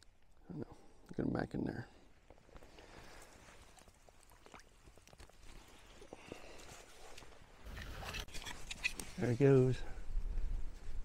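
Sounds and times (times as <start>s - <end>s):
rustling and scraping movements: 2.4s - 11.0s.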